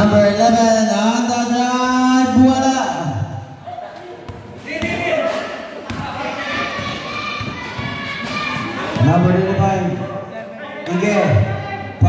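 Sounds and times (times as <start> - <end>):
voices of players and spectators: 0.0 - 12.0
basketball bouncing on court: 4.2 - 9.5.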